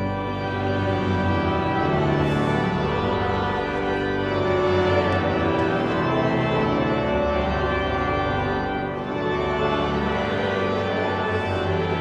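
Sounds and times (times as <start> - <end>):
pipe organ sustained chords: 0.0 - 12.0.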